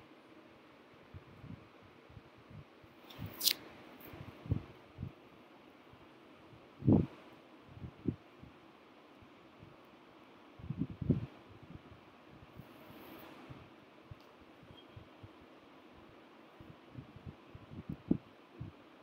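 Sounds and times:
faint background noise: 0.0s - 19.0s.

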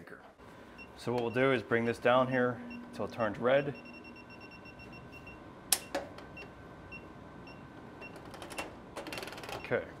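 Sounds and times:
breaker finder beeping: 0.6s - 8.2s.

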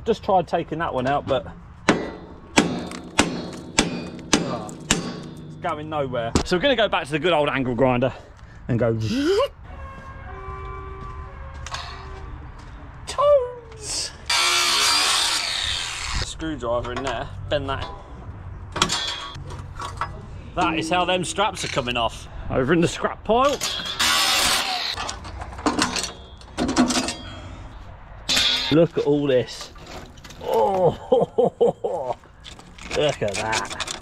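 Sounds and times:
angle grinder cutting metal: 14.3s - 16.2s, 23.6s - 25.0s
light metallic clanks: 18.7s - 21.0s.

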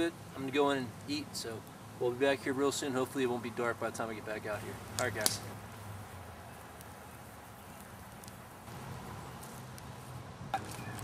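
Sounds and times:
wood fire crackling: 0.0s - 11.0s.

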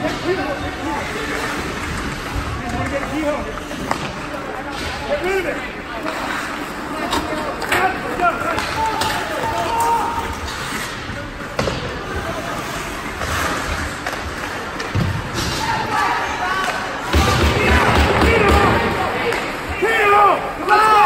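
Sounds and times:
puck and sticks hitting boards: 2.7s - 4.9s, 7.1s - 10.8s, 11.4s - 12.2s
spectators shouting: 15.6s - 21.0s.

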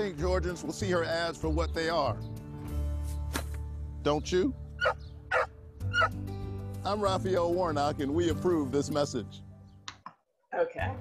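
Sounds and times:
soft background music: 0.0s - 10.0s, 10.6s - 11.0s
dog barking: 4.8s - 6.1s.

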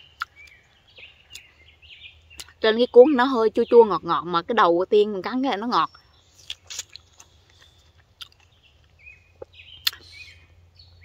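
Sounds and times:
person chewing strawberry: 0.0s - 1.5s, 6.3s - 10.3s.

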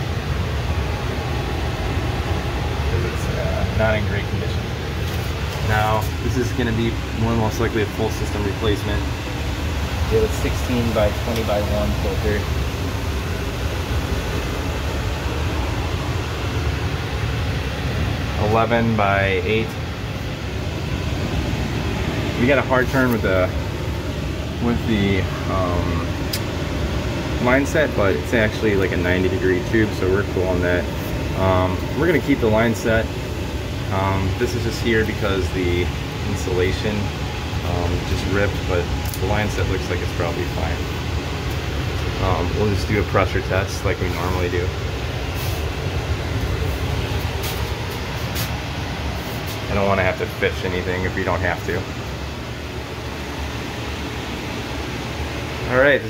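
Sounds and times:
machinery rumbling: 0.0s - 53.2s
hvac equipment hum and rushing air: 0.0s - 56.0s.

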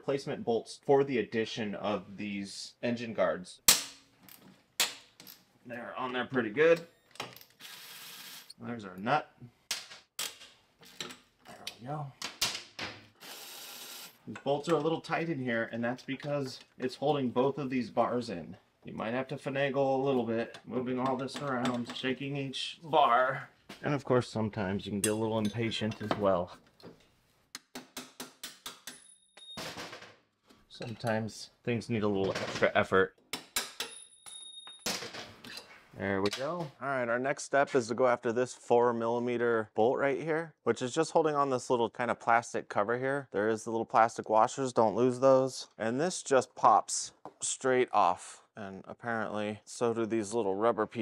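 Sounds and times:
sharp metal clinks: 33.8s - 34.9s.

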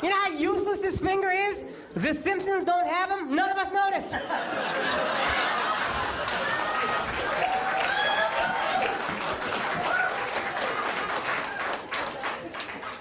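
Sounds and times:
audience laughing: 4.1s - 9.0s
audience applauding: 5.2s - 13.0s.

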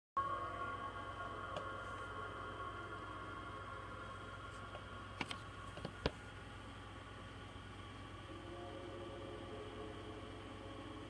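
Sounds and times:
electronic drone of held tones: 0.2s - 5.6s, 7.9s - 11.0s
low hum: 0.2s - 11.0s.

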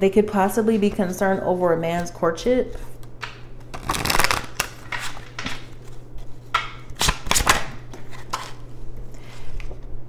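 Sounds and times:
cards being shuffled: 2.7s - 8.6s
sharp card snaps: 6.6s - 7.8s.

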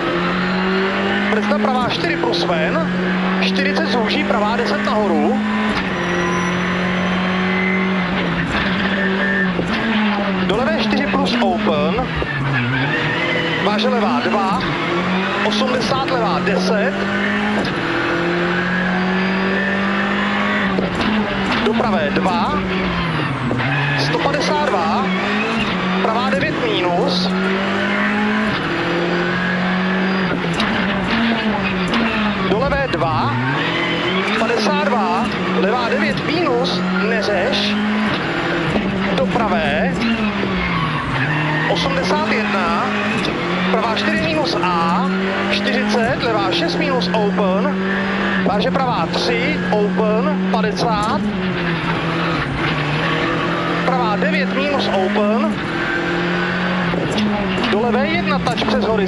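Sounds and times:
rally car engine revving: 0.0s - 59.0s
road and tyre noise: 0.0s - 59.0s.

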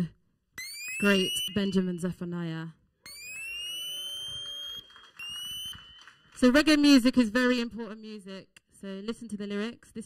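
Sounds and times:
electronic siren sweeping upward: 0.6s - 1.9s, 3.0s - 6.1s.

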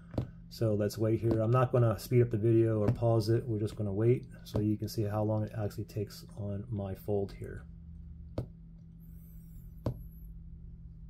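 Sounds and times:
steady low hum: 0.0s - 11.0s
hand tapping on tabletop: 0.1s - 0.4s, 8.4s - 8.6s.

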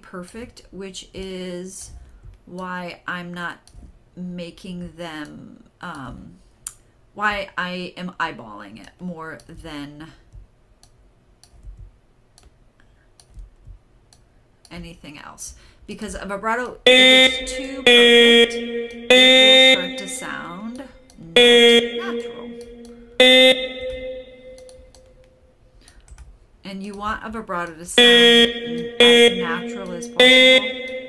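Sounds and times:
computer mouse clicking: 10.3s - 14.9s, 24.6s - 25.1s, 25.8s - 27.8s
steady pitched tone: 16.8s - 25.4s, 28.0s - 31.0s.

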